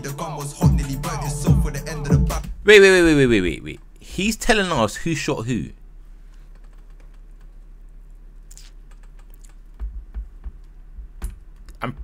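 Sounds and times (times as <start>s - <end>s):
steady low hum: 0.0s - 12.0s
tapping on computer keyboard: 6.5s - 7.6s, 8.9s - 12.0s.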